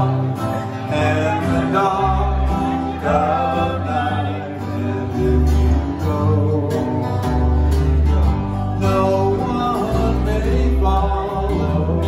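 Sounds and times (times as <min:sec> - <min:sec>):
acoustic guitars playing: 0:00.0 - 0:12.0
electric bass: 0:00.0 - 0:12.0.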